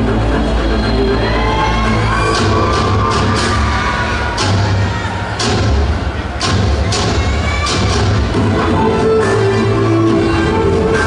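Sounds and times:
dance music with rising melody: 0:00.0 - 0:11.0.

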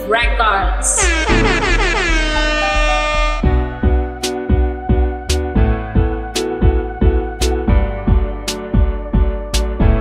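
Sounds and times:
dancehall beat: 0:00.9 - 0:03.6
air horn sound effect: 0:00.9 - 0:03.7.

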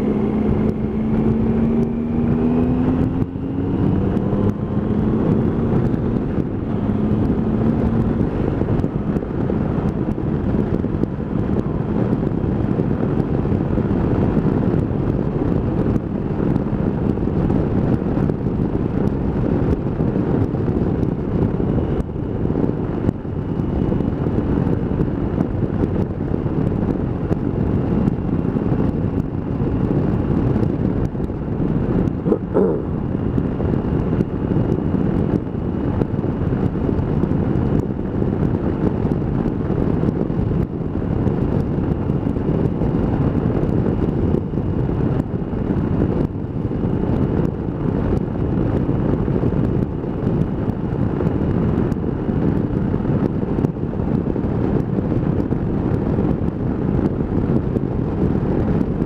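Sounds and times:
motorcycle engine running: 0:00.0 - 0:59.0
wind rushing over microphone: 0:00.0 - 0:59.0.

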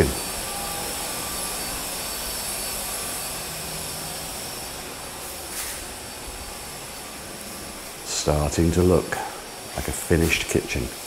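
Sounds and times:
faint hum: 0:00.0 - 0:11.0
steady rushing noise: 0:00.0 - 0:11.0
brief hiss: 0:05.5 - 0:05.9.

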